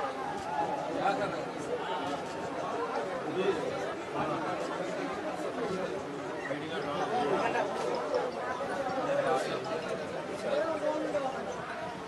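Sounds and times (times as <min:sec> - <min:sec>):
overlapping chatter of people: 0:00.0 - 0:12.0.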